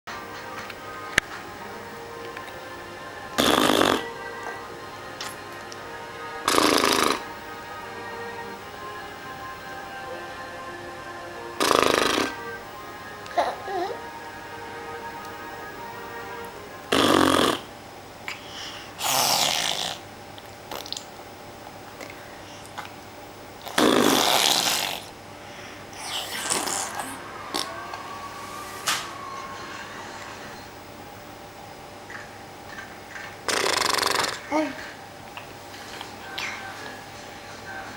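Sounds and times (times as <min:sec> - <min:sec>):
person blowing a raspberry: 0:03.4 - 0:04.1, 0:06.4 - 0:07.3, 0:11.6 - 0:12.5, 0:16.9 - 0:17.7, 0:19.0 - 0:20.0, 0:23.6 - 0:25.1, 0:26.0 - 0:27.7, 0:33.5 - 0:34.5
person making silly blowing noise: 0:06.5 - 0:07.2
softer rough noise: 0:23.7 - 0:31.0.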